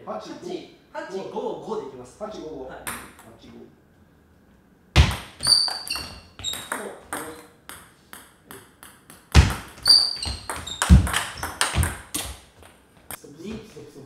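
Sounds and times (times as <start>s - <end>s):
ball bouncing on table: 5.0s - 12.8s
ball clicking off paddles: 5.1s - 12.8s.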